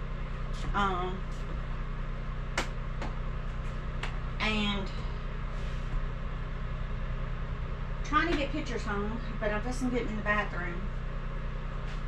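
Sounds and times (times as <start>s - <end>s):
generator and heater hum: 0.0s - 12.0s.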